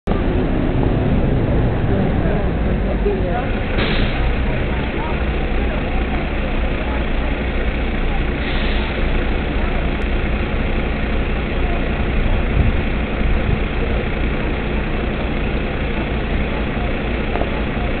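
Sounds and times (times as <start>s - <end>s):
street traffic noise: 0.0s - 18.0s
diesel engine idling: 0.1s - 18.0s.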